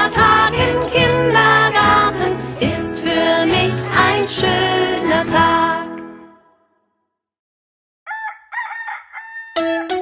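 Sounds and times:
children's song instrumental music: 0.0s - 6.8s, 9.6s - 10.0s
rooster crowing: 8.1s - 10.0s.

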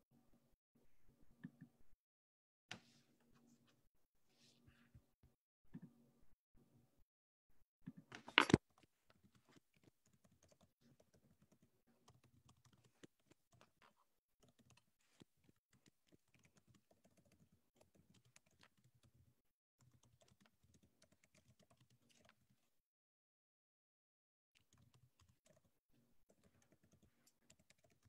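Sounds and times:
typing on computer keyboard: 19.8s - 22.4s, 26.3s - 28.0s.

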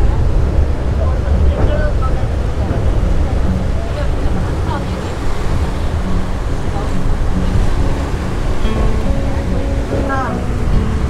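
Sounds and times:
train running rumble: 0.0s - 11.0s
wind buffeting microphone: 0.0s - 11.0s.

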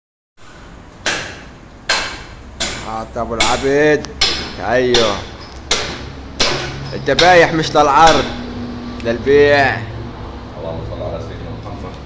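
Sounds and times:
cleaver chopping with metallic ring: 1.1s - 8.5s.

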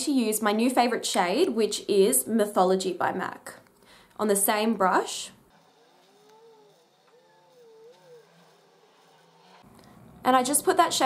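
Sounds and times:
faint rising and falling call: 5.6s - 10.3s.

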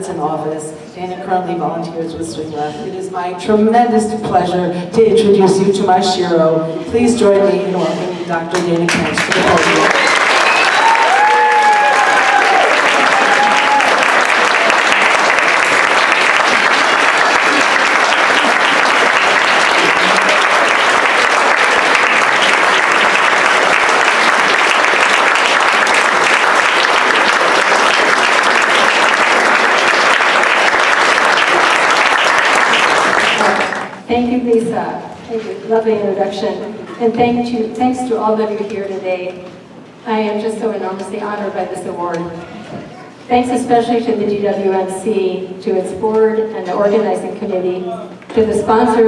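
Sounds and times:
audience applauding: 8.8s - 34.1s.

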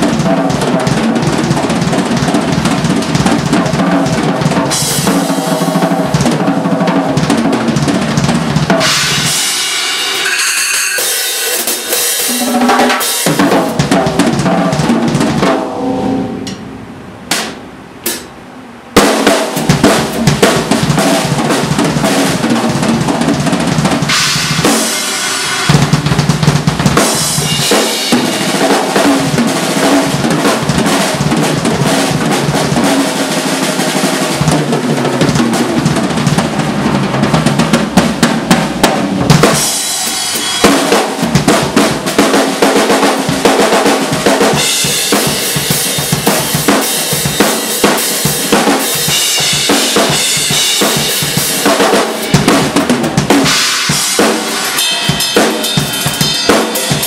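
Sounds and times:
fast drum kit playing: 0.0s - 57.0s.

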